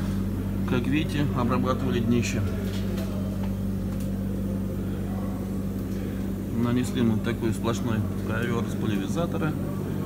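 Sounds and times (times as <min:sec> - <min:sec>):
workshop machinery humming: 0:00.0 - 0:10.0.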